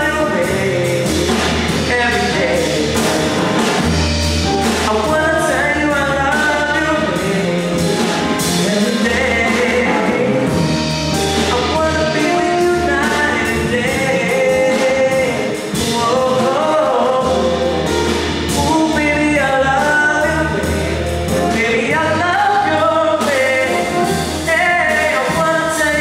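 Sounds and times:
man singing into microphone: 0.0s - 3.6s, 4.5s - 26.0s
drum kit: 0.0s - 26.0s
guitar: 0.0s - 26.0s.

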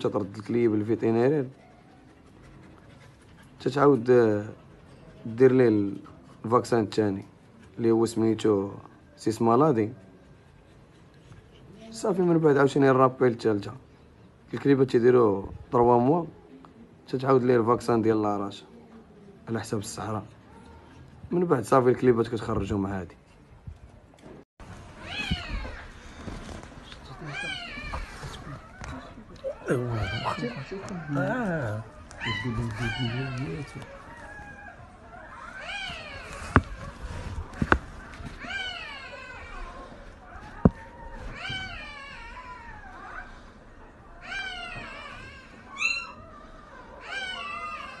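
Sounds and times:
puppies crying: 24.9s - 48.0s.

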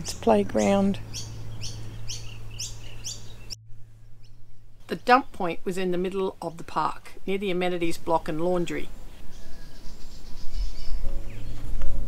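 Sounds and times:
steady low hum: 0.0s - 6.1s
bird chirping: 0.0s - 6.6s, 9.2s - 12.0s.

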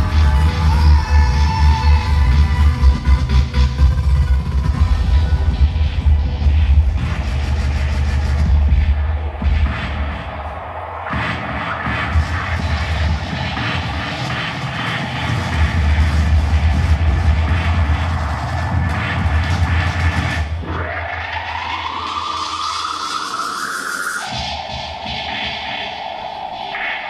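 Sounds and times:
bass-heavy electronic music: 0.0s - 27.0s.

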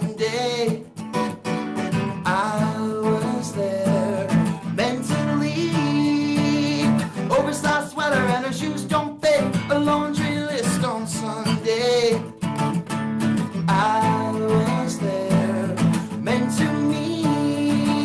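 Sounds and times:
man singing: 0.0s - 12.5s, 13.4s - 18.0s
acoustic guitar strumming: 0.0s - 18.0s.

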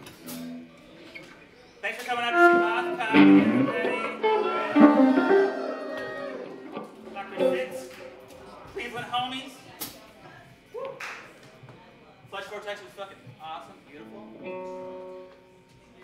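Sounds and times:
band playing improvised music: 2.3s - 8.6s
electric guitar sliding notes: 2.3s - 8.6s.

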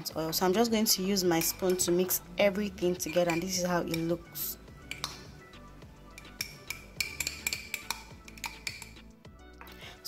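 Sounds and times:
quiet background music: 0.0s - 10.0s
metal spoon clinking in glass jar: 2.8s - 4.2s, 4.8s - 5.2s, 6.1s - 9.0s.

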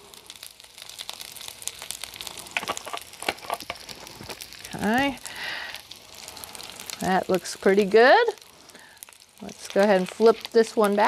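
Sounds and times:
faint crackles: 0.0s - 11.0s
fritters sizzling in oil: 0.0s - 11.0s
oil hissing: 1.4s - 10.8s.

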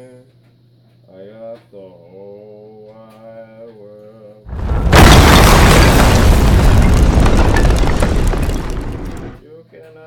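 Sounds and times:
synthetic explosion boom: 4.5s - 9.4s.

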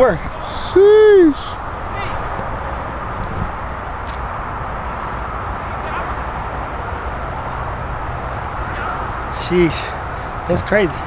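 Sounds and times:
distant highway traffic: 0.0s - 11.0s.

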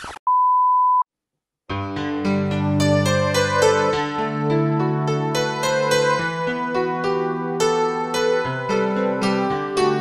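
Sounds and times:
synthesizer keyboard music: 1.7s - 10.0s.

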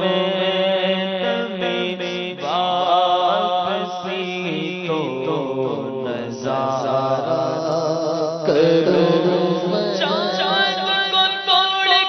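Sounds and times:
man reciting with ornamented notes: 0.0s - 12.0s.

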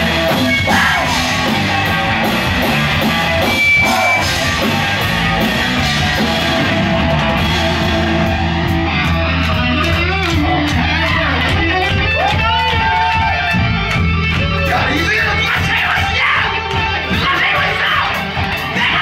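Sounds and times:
bass guitar line: 0.0s - 19.0s
distorted electric guitar: 0.0s - 19.0s
drum kit with cymbal hits: 0.0s - 19.0s.

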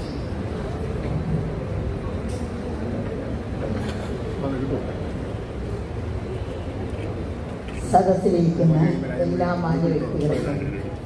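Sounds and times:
woman speaking over public address: 7.7s - 11.0s.

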